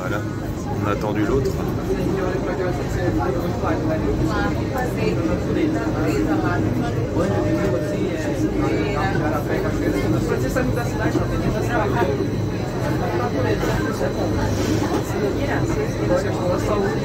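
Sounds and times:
passengers chattering: 0.0s - 17.0s.

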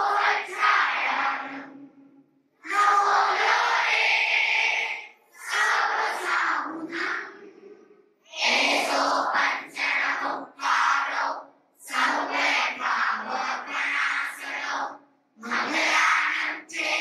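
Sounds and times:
voices chanting a prayer: 0.0s - 17.0s.

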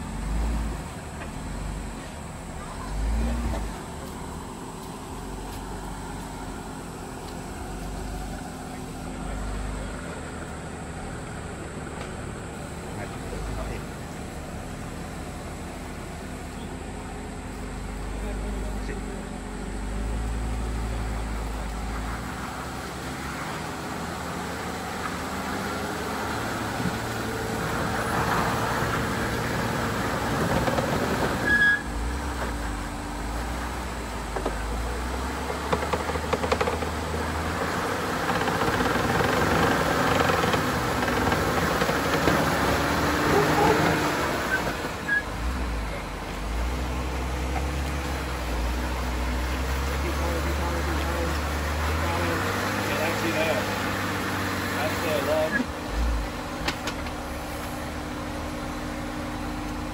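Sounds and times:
off-road vehicle engine under load: 0.0s - 59.9s.

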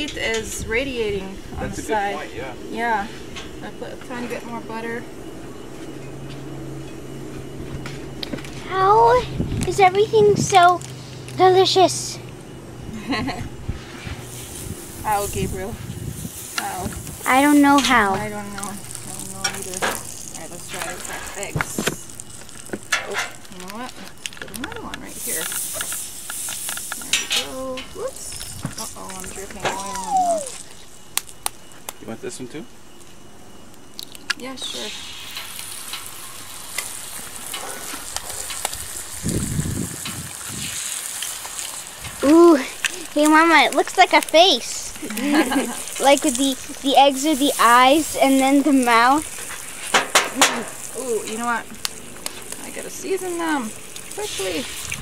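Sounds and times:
low mechanical hum: 0.0s - 55.0s
oil sizzling on griddle: 7.7s - 12.2s, 13.0s - 31.5s, 34.0s - 55.0s.

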